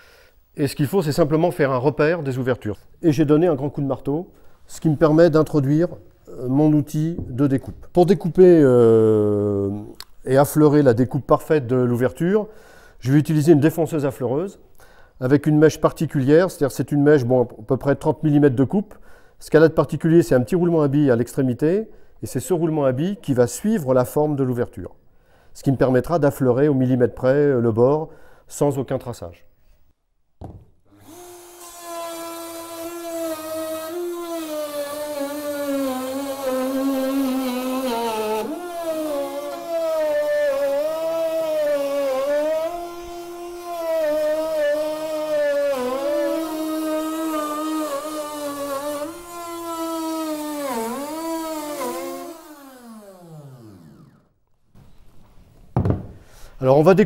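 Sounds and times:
router motor whine cutting wood: 30.9s - 54.3s.

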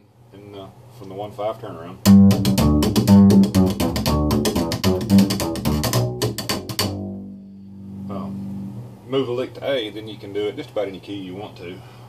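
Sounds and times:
slap upright bass: 2.0s - 8.9s.

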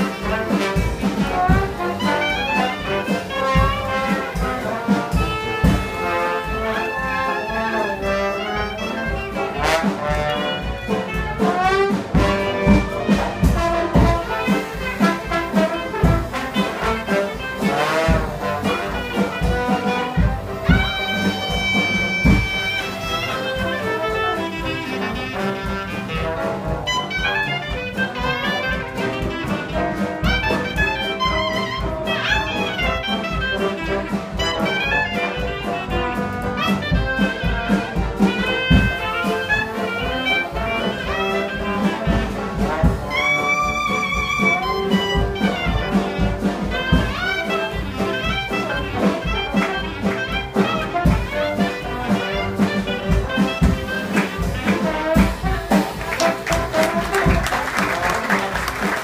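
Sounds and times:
brass horns: 0.0s - 59.0s
jazz band playing: 0.0s - 59.0s.

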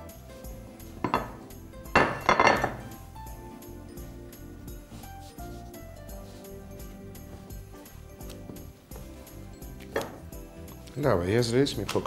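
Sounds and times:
background music: 0.0s - 12.0s
dough and cloth rustling: 2.6s - 12.0s.

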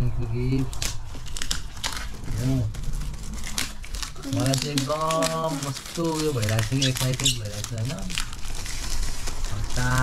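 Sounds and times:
wrapping paper crinkling: 0.6s - 10.0s.

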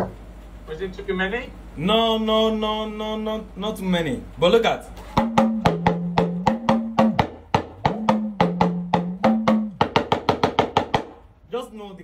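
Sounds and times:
talking drum strokes: 5.0s - 10.5s.

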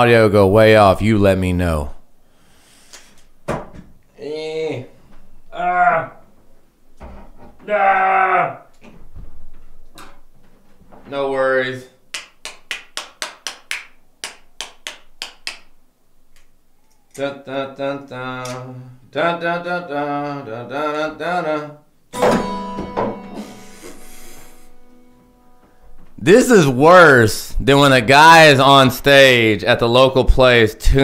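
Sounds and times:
strummed guitar chord: 22.2s - 26.0s.

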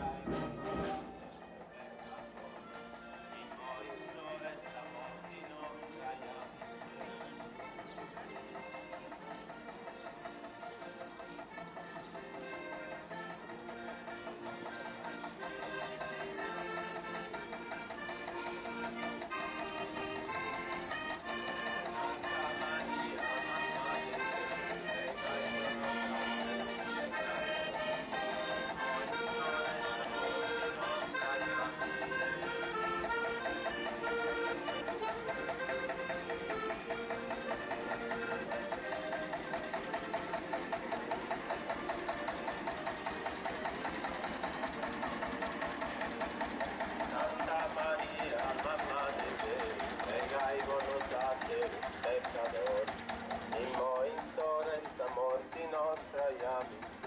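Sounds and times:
button accordions playing folk tune: 0.0s - 57.0s
tractor engine chugging: 0.0s - 57.0s.

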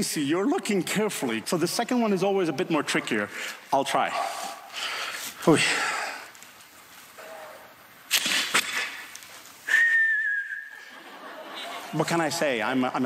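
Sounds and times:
person whistling held note: 9.7s - 10.9s.

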